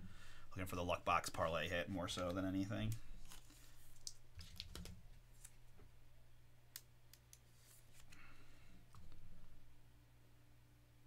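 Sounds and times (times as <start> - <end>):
soft plastic rustle: 1.8 - 5.8.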